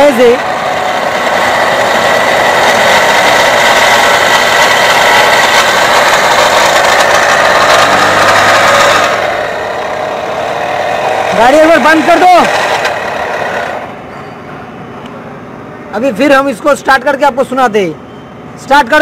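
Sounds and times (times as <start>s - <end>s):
high-pitched pulley whirring: 0.0s - 14.4s
diesel engine idling: 0.0s - 15.8s.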